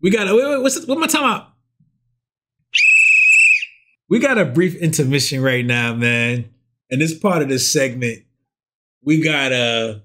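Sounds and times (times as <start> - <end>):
whistle blast: 2.7 - 4.0.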